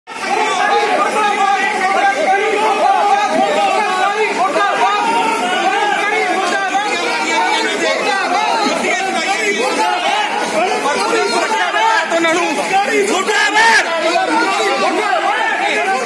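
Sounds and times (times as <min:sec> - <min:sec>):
crowd talking and calling out: 0:00.1 - 0:16.0.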